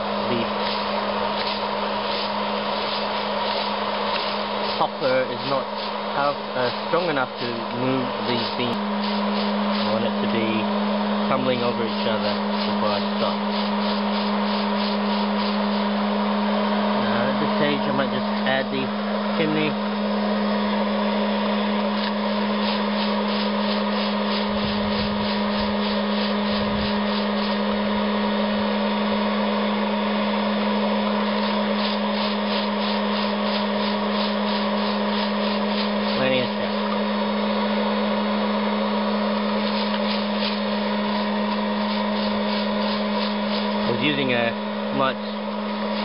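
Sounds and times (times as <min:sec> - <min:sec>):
popcorn popper fan hum: 0:00.0 - 0:46.0
coffee beans rattling and scraping: 0:00.2 - 0:10.6, 0:11.3 - 0:15.9, 0:22.0 - 0:27.8, 0:31.3 - 0:36.9, 0:39.6 - 0:44.4.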